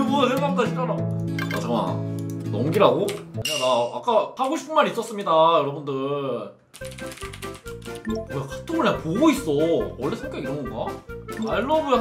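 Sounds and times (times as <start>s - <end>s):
background music: 0.0s - 3.8s, 6.8s - 12.0s
keyboard typing clicks: 6.8s - 8.2s.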